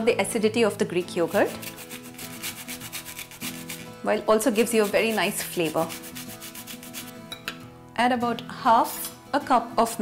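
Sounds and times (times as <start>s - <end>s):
faint background music: 0.0s - 10.0s
orange rind scraping on grater: 1.2s - 7.2s.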